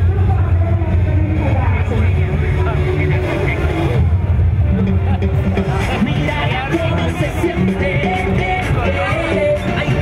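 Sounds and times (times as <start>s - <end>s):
amplified parade sound: 0.0s - 10.0s
many voices: 0.0s - 10.0s.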